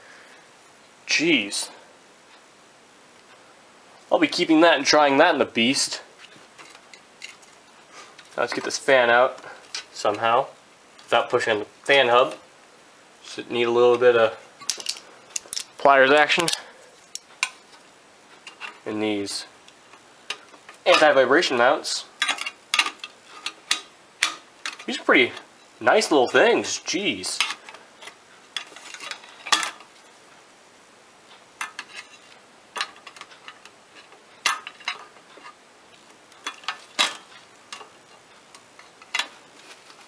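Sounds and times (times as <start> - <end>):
metal pliers clicking: 14.7 - 15.7.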